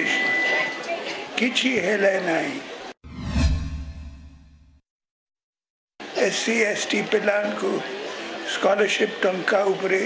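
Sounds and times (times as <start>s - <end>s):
falling high swish: 3.1s - 4.4s.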